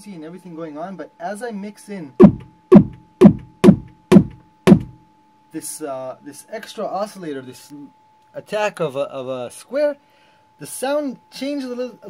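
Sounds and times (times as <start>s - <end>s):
synthesized kick drum hits: 2.2s - 5.0s.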